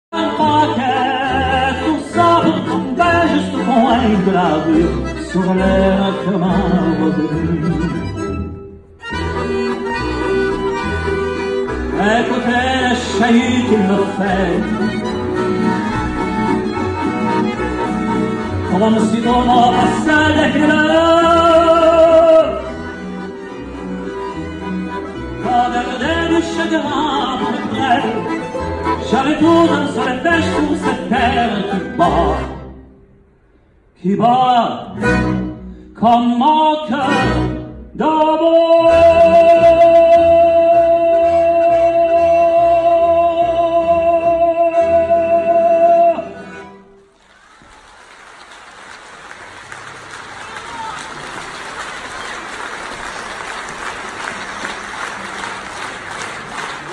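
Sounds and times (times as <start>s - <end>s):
man singing with vibrato: 0.0s - 8.5s, 11.5s - 23.0s, 25.0s - 32.9s, 34.0s - 46.8s
violin bass and accordion ensemble: 0.2s - 33.1s, 34.8s - 47.2s
audience applauding: 47.2s - 56.9s.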